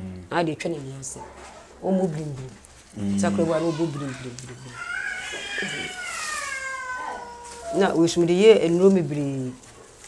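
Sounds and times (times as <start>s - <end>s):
high-pitched animal call: 3.1s - 8.0s.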